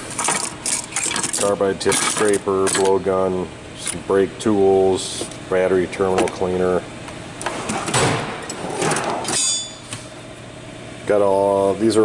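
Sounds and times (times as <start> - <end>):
metallic ringing of tools: 9.3 - 9.9.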